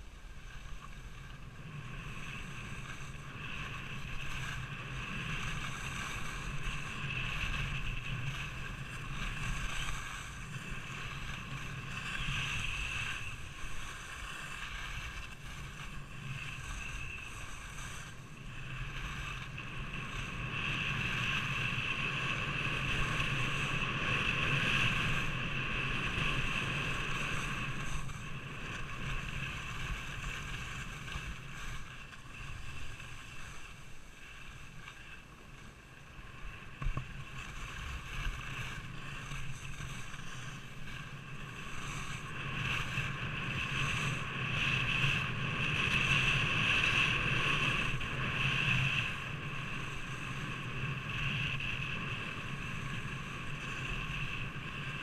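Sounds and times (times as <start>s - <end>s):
skis hissing over snow: 0.0s - 55.0s
wind rushing over camera: 0.0s - 55.0s.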